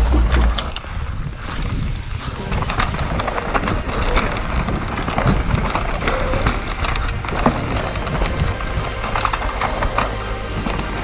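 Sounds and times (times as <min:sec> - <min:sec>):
bike rattling over bumps: 0:00.0 - 0:11.0
bike tyres rolling over dirt: 0:00.0 - 0:11.0.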